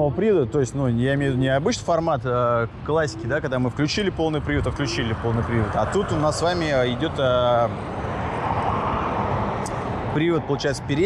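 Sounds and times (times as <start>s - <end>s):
wind rushing: 4.2s - 10.5s.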